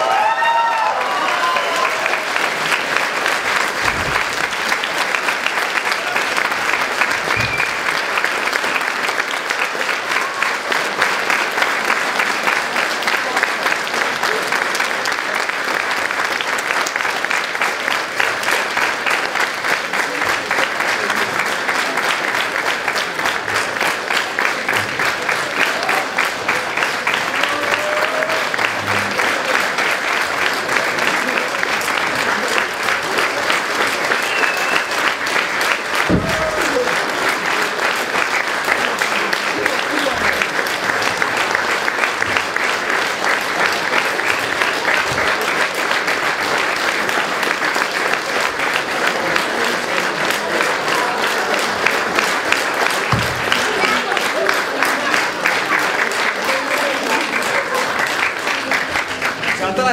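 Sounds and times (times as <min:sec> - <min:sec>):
audience applauding: 0:00.0 - 0:59.9.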